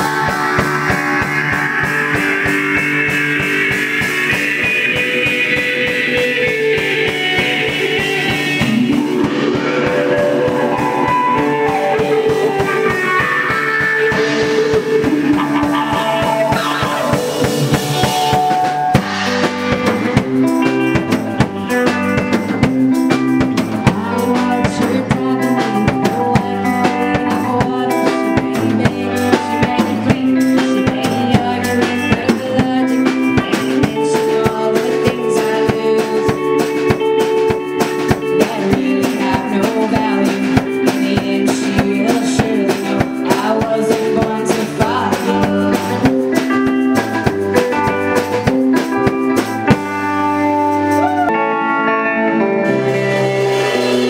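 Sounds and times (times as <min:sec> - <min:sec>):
bass guitar: 0:00.0 - 0:54.0
drum kit beat: 0:00.0 - 0:54.0
electric guitar: 0:00.0 - 0:54.0.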